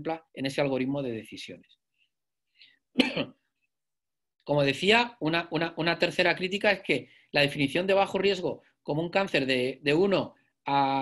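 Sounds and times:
man clearing his throat: 2.9s - 3.4s.

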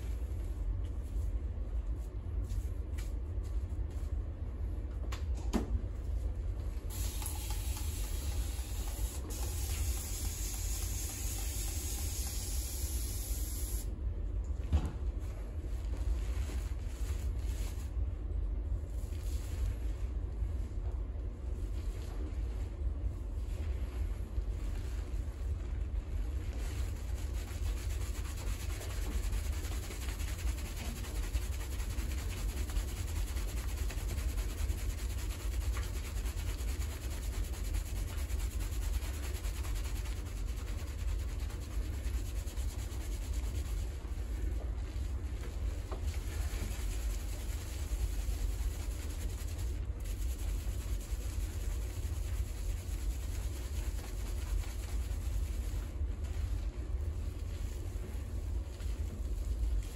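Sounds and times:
hands rubbing lathered hair: 15.8s - 18.0s, 18.9s - 20.2s, 23.4s - 59.9s.

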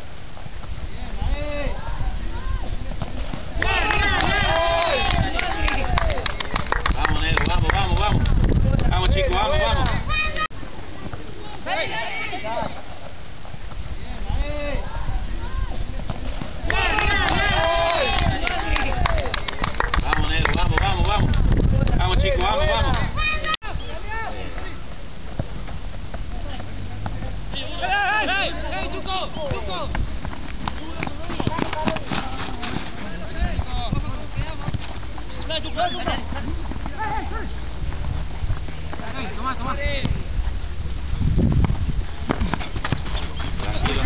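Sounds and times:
wind rumbling on microphone: 0.0s - 11.4s, 13.1s - 27.5s, 29.1s - 44.0s
players shouting: 1.3s - 6.4s, 8.9s - 12.8s, 14.2s - 19.4s, 22.0s - 24.8s, 27.5s - 34.5s, 35.2s - 37.8s, 43.4s - 44.0s
people shouting: 3.5s - 6.2s, 16.6s - 19.3s, 27.6s - 29.9s, 36.9s - 37.6s.

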